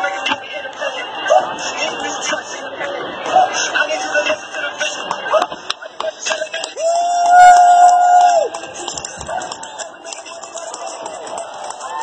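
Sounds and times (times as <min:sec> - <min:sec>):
crowd noise: 0:00.0 - 0:12.0
spectator cheering woo: 0:06.8 - 0:08.5.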